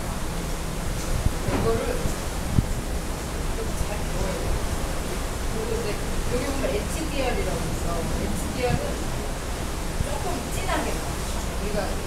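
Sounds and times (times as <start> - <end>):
rushing wind: 0.0 - 12.0
sea noise: 0.0 - 12.0.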